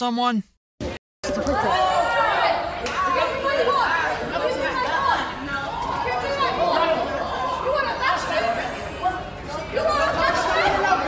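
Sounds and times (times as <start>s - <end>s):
people arguing loudly: 1.4s - 11.0s.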